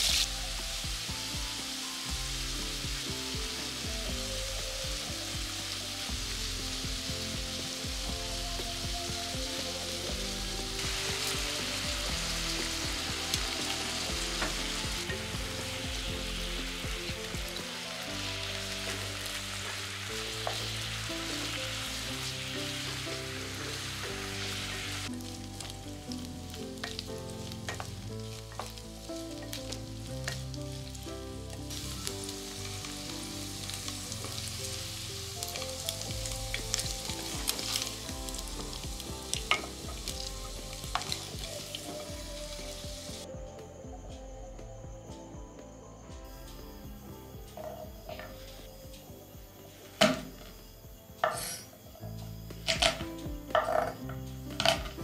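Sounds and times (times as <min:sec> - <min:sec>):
meat sizzling in oil: 0:00.0 - 0:43.3, 0:52.4 - 0:55.0.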